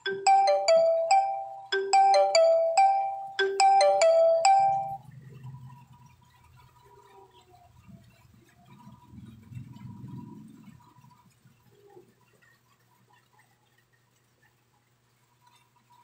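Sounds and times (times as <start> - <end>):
marimba-like phone ringtone: 0.0 - 5.0.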